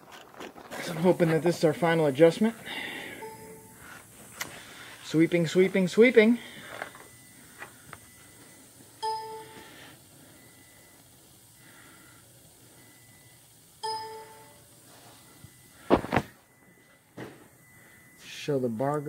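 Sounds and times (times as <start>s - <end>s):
short electronic chimes: 3.0s - 3.8s, 13.8s - 14.7s.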